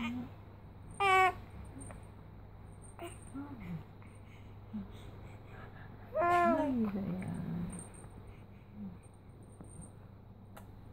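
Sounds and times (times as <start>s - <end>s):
infant cooing: 1.0s - 1.4s, 6.2s - 6.8s.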